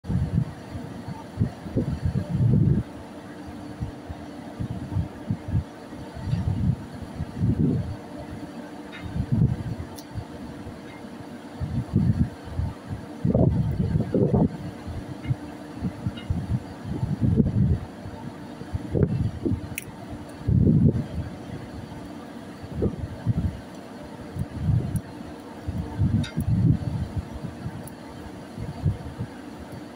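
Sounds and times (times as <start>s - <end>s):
wind buffeting microphone: 0.0s - 3.0s, 3.8s - 8.0s, 8.9s - 10.8s, 11.6s - 23.7s, 24.3s - 29.9s
low machinery hum: 0.0s - 29.9s.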